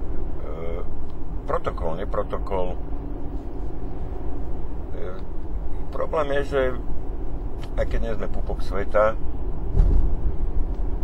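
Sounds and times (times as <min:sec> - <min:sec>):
low steady vehicle rumble: 0:00.0 - 0:11.0.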